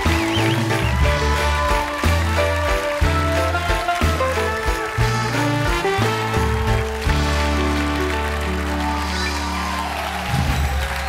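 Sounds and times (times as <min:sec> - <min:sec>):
band playing held chords: 0:00.0 - 0:10.6.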